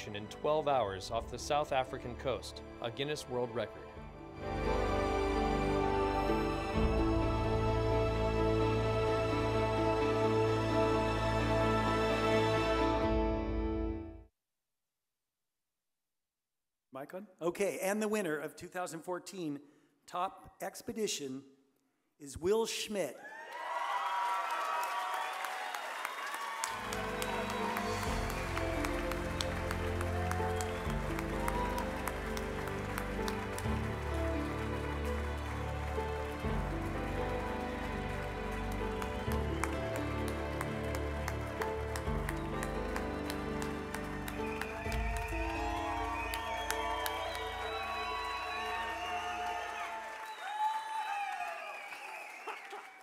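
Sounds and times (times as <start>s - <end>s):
audience applause and cheers: 4.2s - 13.6s, 23.2s - 53.0s.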